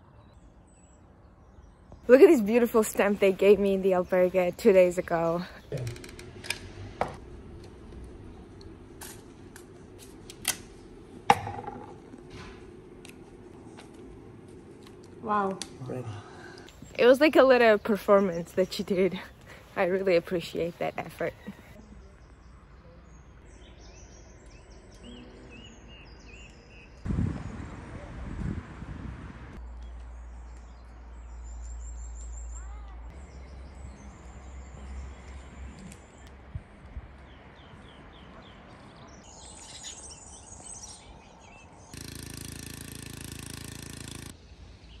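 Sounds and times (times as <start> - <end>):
small birds chirping: 0.0 - 6.0, 15.3 - 27.6, 29.6 - 45.0
loud low rumbling: 27.1 - 29.6.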